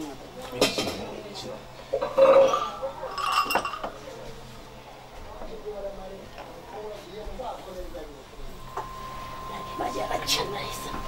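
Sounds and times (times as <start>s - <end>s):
small brass bells clinking: 2.1s - 3.9s.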